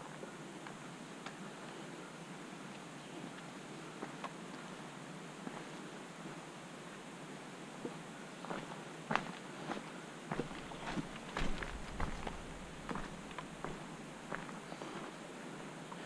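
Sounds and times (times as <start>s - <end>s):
footsteps crunching on dirt trail: 8.5s - 15.2s.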